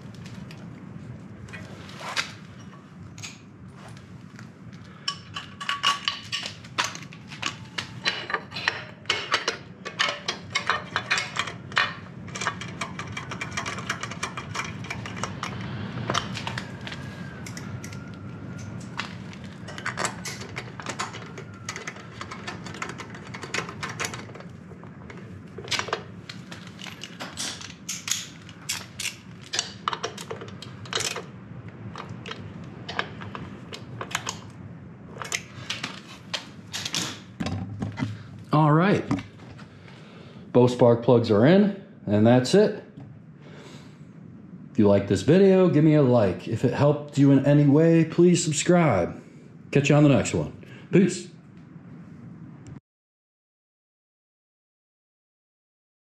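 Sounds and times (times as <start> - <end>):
hand tools clicking on metal: 5.0 - 16.7.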